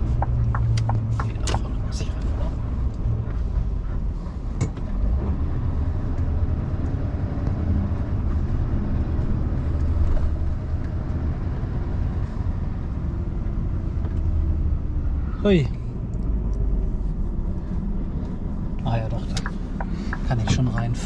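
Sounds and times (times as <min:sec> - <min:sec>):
road noise: 0:00.0 - 0:21.0
truck engine rumbling: 0:00.0 - 0:21.0.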